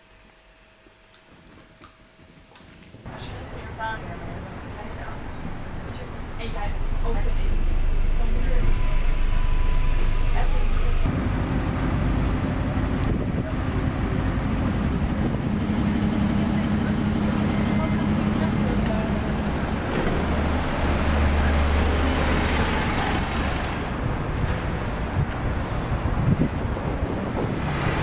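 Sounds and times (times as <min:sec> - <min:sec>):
busy street traffic: 0:03.1 - 0:28.0
engines humming: 0:03.1 - 0:28.0.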